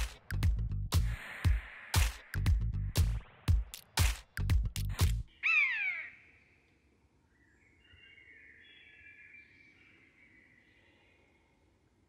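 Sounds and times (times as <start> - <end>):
falling bird-like cry: 5.4 - 6.4.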